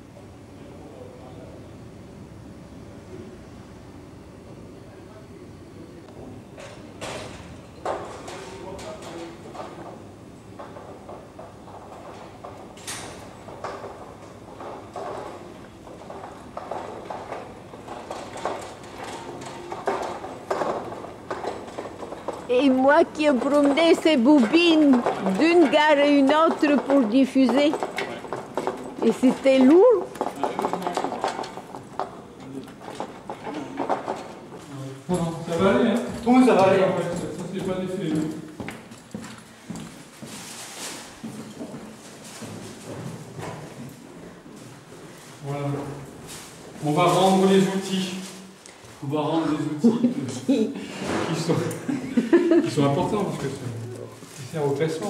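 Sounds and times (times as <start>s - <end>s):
footsteps on hallway floor: 10.6s - 32.2s, 32.8s - 49.6s
metal hand truck rattling over cobblestones: 16.0s - 32.1s.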